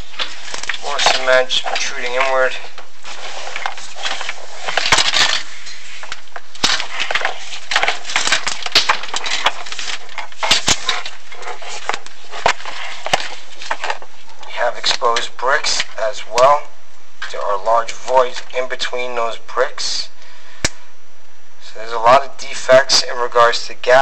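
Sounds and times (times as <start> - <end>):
camera cable scraping masonry: 0.0 - 16.6
steady hiss: 0.0 - 23.9.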